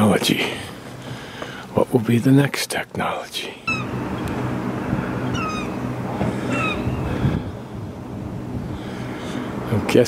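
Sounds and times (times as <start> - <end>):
low engine hum: 0.0 - 10.0
gulls calling: 3.5 - 9.6.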